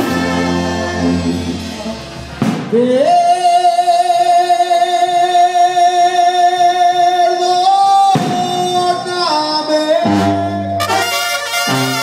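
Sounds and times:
brass band music with held note: 0:00.0 - 0:02.7, 0:10.0 - 0:12.0
drum crash: 0:00.0 - 0:03.1, 0:08.2 - 0:09.6.

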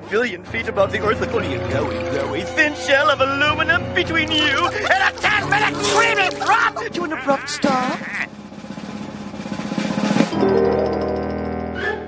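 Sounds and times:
cartoon scream: 0:05.3 - 0:08.3
snare drum roll: 0:08.6 - 0:10.4.

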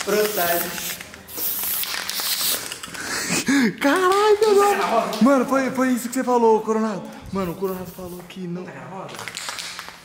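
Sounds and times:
aerosol spray hissing: 0:00.1 - 0:02.7.

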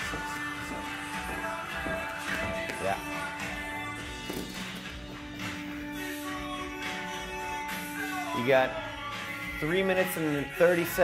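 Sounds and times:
background music with sustained tones: 0:00.0 - 0:11.0.

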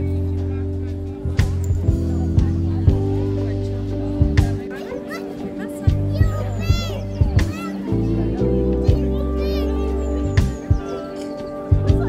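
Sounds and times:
calm music with bass line: 0:00.0 - 0:12.0
crowd chatter: 0:00.0 - 0:12.0
child's high call: 0:04.7 - 0:12.0.

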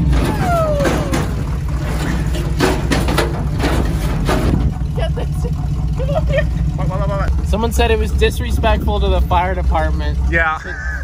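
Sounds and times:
sharp knocks and clanks: 0:00.0 - 0:06.0
truck engine running: 0:00.0 - 0:11.0.

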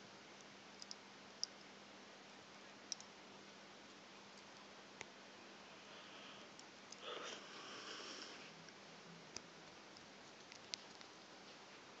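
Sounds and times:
faint hiss and low hum: 0:00.0 - 0:12.0
sharp high-pitched clicks: 0:00.4 - 0:01.7.

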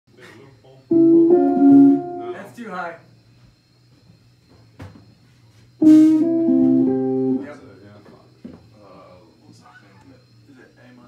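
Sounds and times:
electric guitar notes ringing: 0:00.9 - 0:02.4, 0:05.8 - 0:07.6.

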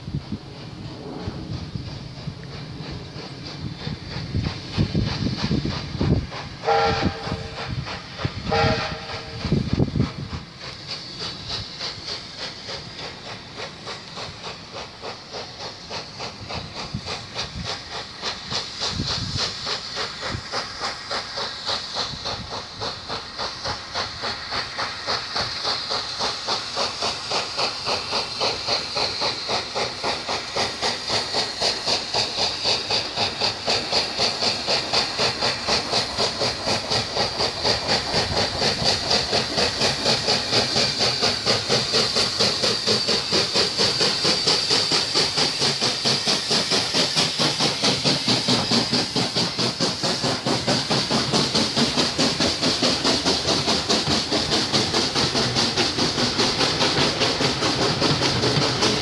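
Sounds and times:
steam hissing: 0:00.0 - 0:59.0
steam locomotive exhaust beats: 0:00.0 - 0:59.0.

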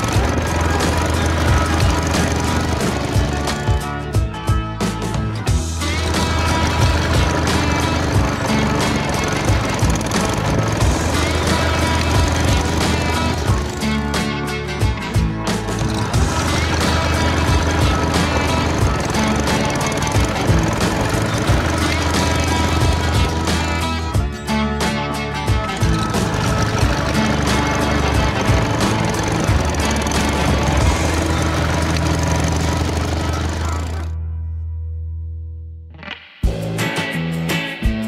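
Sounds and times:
lawn mower engine running: 0:00.0 - 0:34.2
background music: 0:00.0 - 0:38.0.

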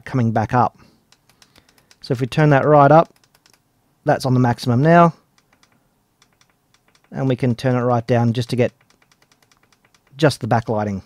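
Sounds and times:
person speaking: 0:00.0 - 0:11.0
light handling clicks: 0:01.1 - 0:02.2, 0:02.9 - 0:03.6, 0:05.3 - 0:07.6, 0:08.5 - 0:10.4.

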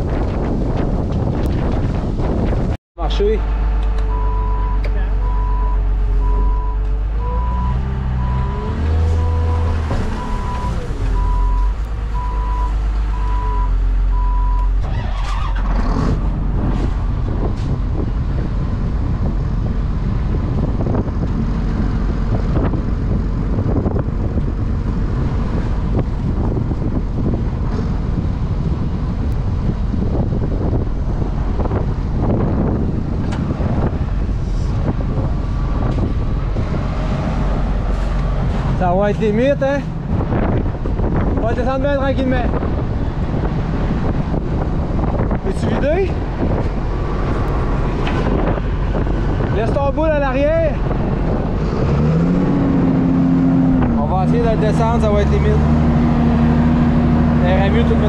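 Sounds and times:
heavy vehicle engine running: 0:00.0 - 0:58.0
back-up alarm beeping: 0:04.1 - 0:14.8.

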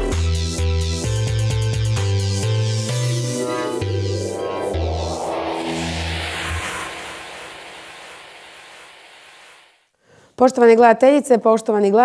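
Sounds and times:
whooshing noise: 0:02.6 - 0:09.8
deep bass note: 0:02.9 - 0:07.5.

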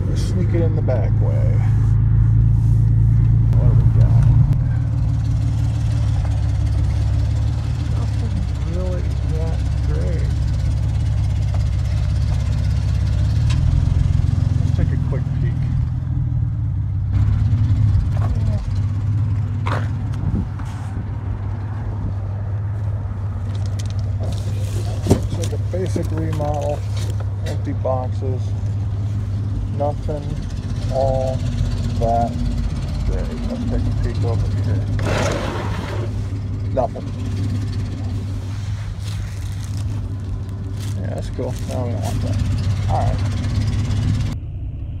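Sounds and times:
vehicle engine running: 0:00.0 - 0:45.0.

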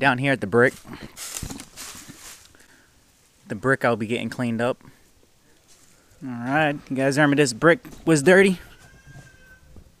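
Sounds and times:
footsteps on dry leaves: 0:00.7 - 0:03.4, 0:05.7 - 0:06.0.

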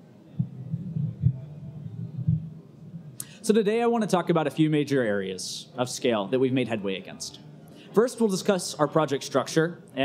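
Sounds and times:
microphone handling thumps: 0:00.4 - 0:03.2.

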